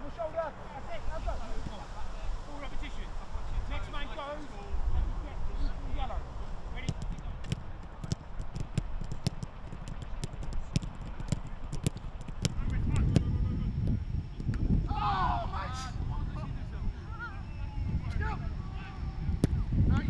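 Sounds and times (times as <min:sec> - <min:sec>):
wind rumble on microphone: 0:00.8 - 0:20.0
footballs being kicked: 0:06.8 - 0:13.3.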